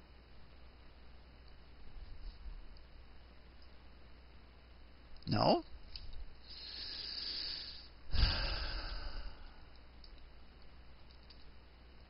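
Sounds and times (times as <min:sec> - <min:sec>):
man breathing into microphone: 0:06.5 - 0:09.6.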